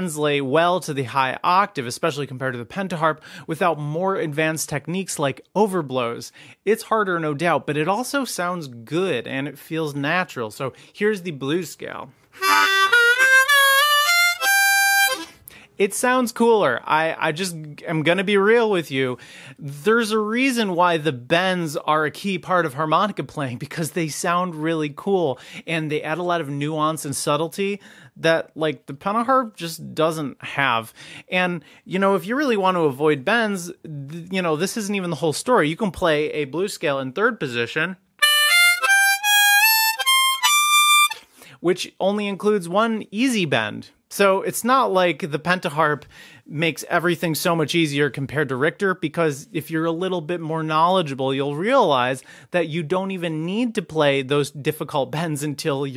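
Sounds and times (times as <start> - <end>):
harmonica playing blues scale: 12.3 - 15.4, 38.2 - 41.3.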